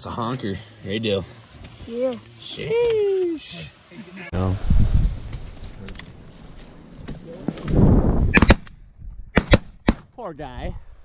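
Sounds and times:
shotgun shots: 8.3s - 8.7s, 9.3s - 10.1s.

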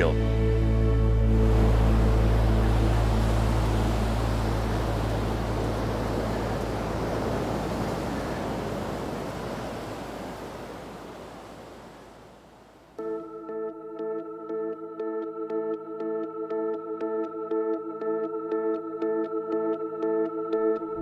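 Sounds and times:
steady rushing noise: 1.2s - 11.7s.

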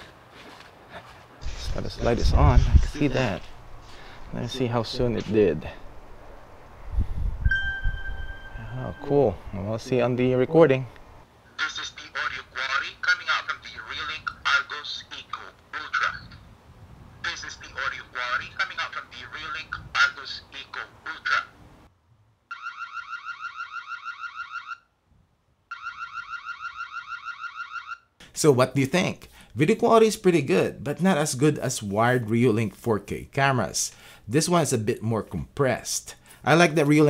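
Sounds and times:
phone notification chime: 7.5s - 9.4s
electronic alarm chirping: 22.5s - 24.8s, 25.7s - 28.1s.

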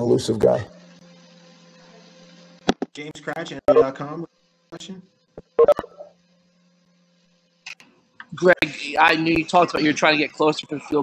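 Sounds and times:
short electronic tone: 3.7s - 4.0s, 5.5s - 6.2s.

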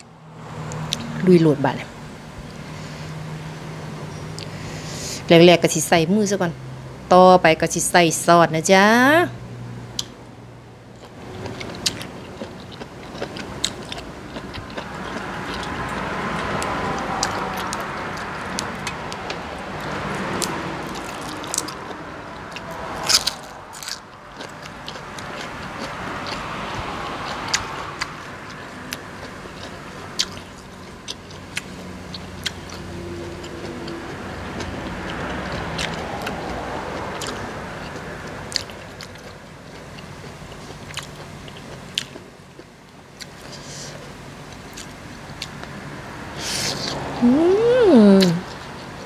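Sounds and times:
crunchy chewing: 10.9s - 45.8s.

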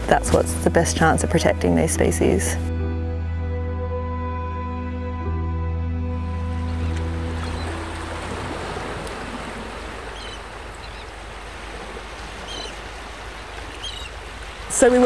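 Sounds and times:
background music: 0.0s - 9.4s
sea waves washing on shore: 6.3s - 15.0s
short high bird calls: 10.0s - 11.2s, 12.4s - 12.8s, 13.6s - 14.2s.

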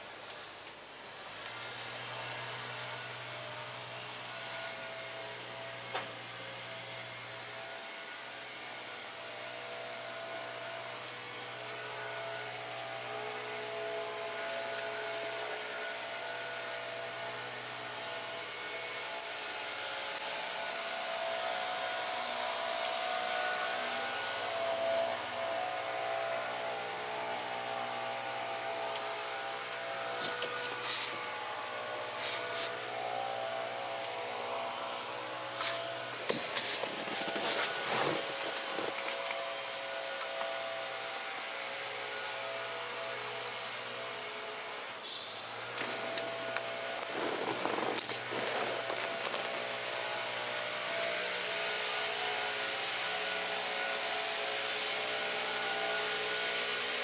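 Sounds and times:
mechanical hum: 0.0s - 57.0s.

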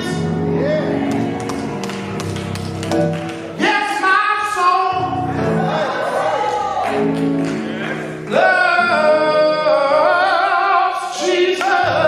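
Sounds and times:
sustained accompaniment chords: 0.0s - 10.6s.

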